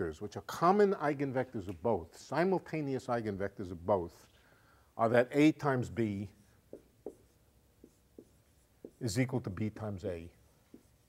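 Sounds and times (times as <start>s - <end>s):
faint chalk tapping on blackboard: 6.7s - 9.2s, 10.6s - 11.0s.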